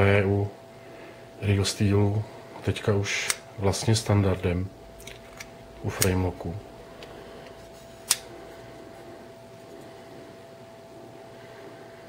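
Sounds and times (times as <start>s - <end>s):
room hum with faint tone: 0.0s - 12.0s
folding knife click: 8.0s - 8.3s.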